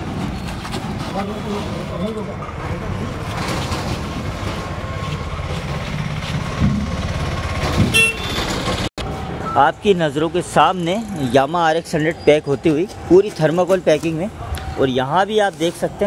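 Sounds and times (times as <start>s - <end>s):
vehicle engine rumble: 0.0s - 16.0s.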